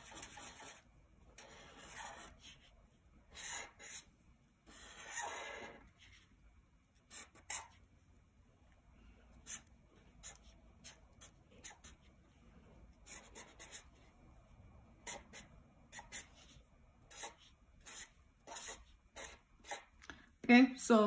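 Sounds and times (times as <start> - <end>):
marker drawing on paper: 0.0 - 6.4, 7.0 - 7.9, 9.4 - 14.1, 15.0 - 20.0.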